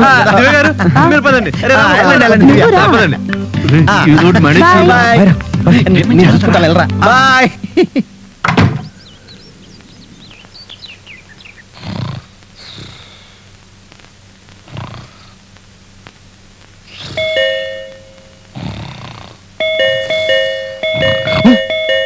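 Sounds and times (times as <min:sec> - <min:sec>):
sharp thunk: 0:08.4 - 0:09.0
electronic doorbell chime: 0:17.2 - 0:18.3, 0:19.6 - 0:22.0.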